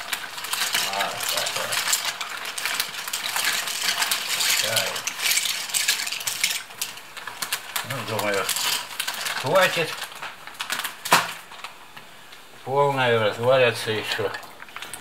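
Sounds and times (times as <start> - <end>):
dry pasta rattling into pot: 0.0 - 11.8.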